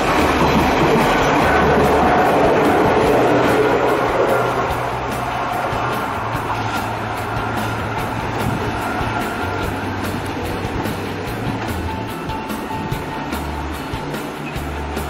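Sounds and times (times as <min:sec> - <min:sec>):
background music: 0:00.0 - 0:15.0
train rumbling: 0:00.0 - 0:15.0.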